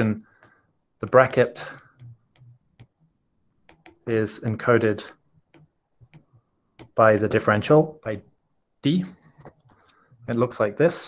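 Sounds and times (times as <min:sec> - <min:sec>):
stylus tapping on glass screen: 0:01.3 - 0:04.1, 0:05.0 - 0:07.5.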